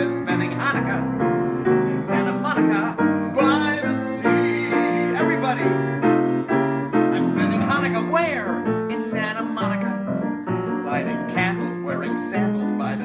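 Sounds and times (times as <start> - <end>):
man singing: 0.0 - 1.1, 1.9 - 6.1, 7.1 - 10.0, 10.7 - 13.0
grand piano accompaniment: 0.0 - 13.0.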